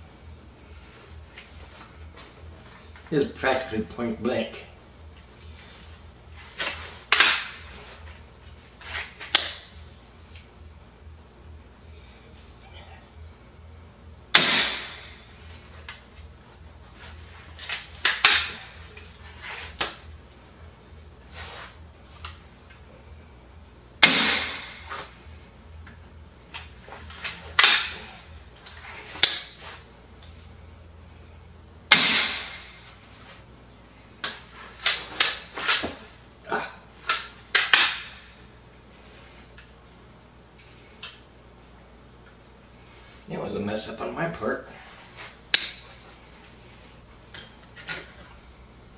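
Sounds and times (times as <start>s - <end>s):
crossbow shot crack: 7.1s - 7.6s, 14.3s - 15.3s, 17.8s - 18.7s, 24.0s - 25.1s, 27.5s - 28.1s, 31.9s - 32.9s.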